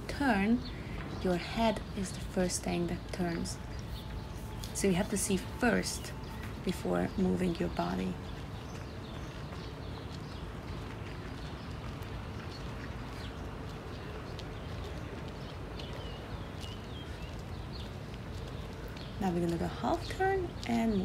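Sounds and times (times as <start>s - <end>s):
soft footfalls on grass: 3.1s - 20.9s.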